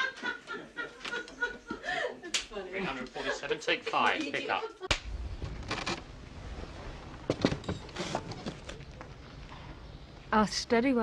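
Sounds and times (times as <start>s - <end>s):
people laughing: 0.0s - 4.9s
people talking: 10.3s - 11.0s.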